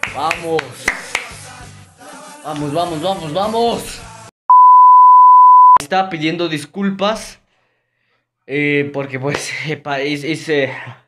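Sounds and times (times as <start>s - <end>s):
censor bleep tone: 4.5s - 5.8s.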